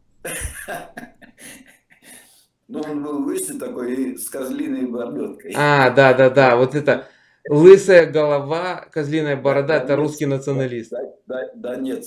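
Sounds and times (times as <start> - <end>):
person coughing: 0.3 - 1.8.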